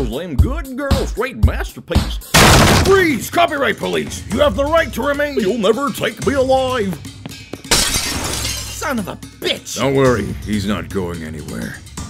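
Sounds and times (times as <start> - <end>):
glass shattering: 2.4 - 3.2, 7.7 - 8.9.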